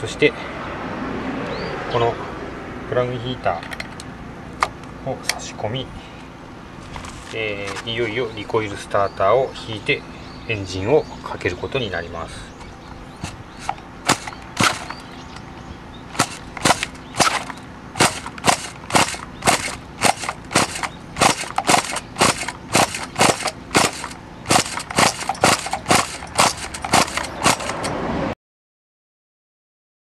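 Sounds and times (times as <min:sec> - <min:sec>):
engine turning over: 0:12.5 - 0:28.1
recoil pull-starter pulls: 0:13.1 - 0:15.5, 0:16.1 - 0:28.0.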